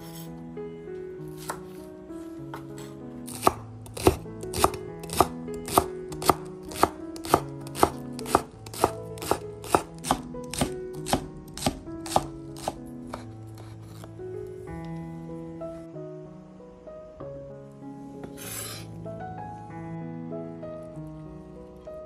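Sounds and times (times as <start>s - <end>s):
knife chopping on cutting board: 1.4s - 1.7s, 2.5s - 13.7s.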